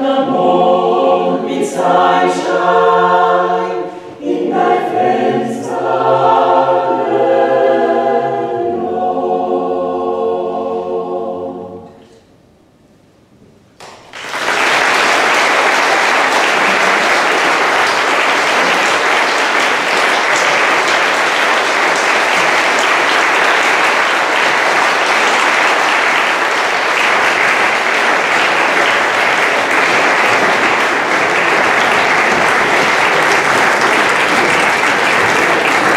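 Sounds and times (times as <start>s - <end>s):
crowd applauding: 13.8s - 35.9s.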